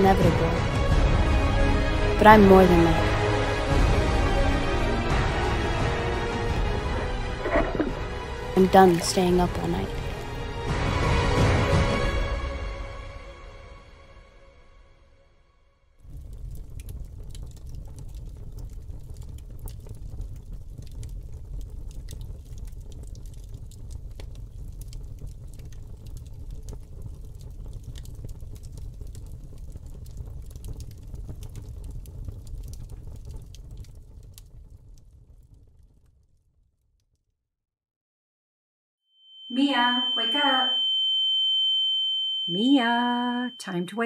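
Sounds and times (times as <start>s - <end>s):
low fire rumble: 0.0s - 11.7s, 16.0s - 36.6s
paper fire crackling: 8.4s - 10.5s, 16.0s - 36.4s.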